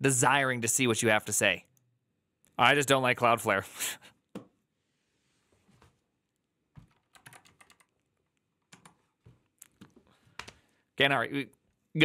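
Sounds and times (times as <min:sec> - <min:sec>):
typing on computer keyboard: 0:06.8 - 0:09.0.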